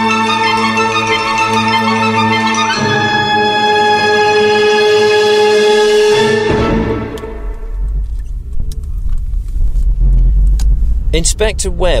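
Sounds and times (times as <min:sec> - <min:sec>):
loud deep rumble: 0:06.8 - 0:12.0.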